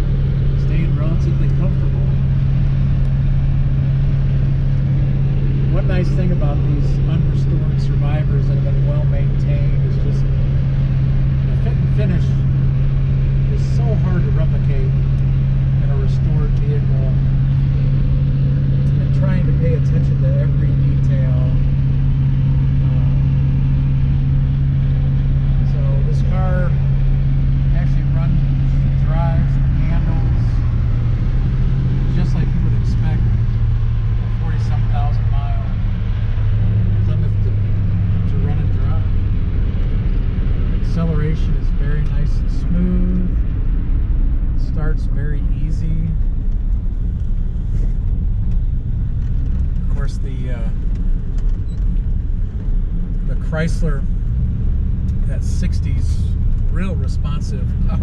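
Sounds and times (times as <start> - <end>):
car engine and road drone: 0.0 - 58.0.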